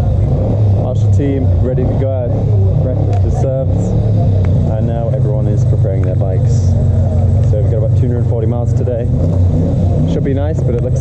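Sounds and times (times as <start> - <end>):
people talking: 0.0 - 9.1, 10.0 - 11.0
motorcycle engines idling: 0.0 - 11.0.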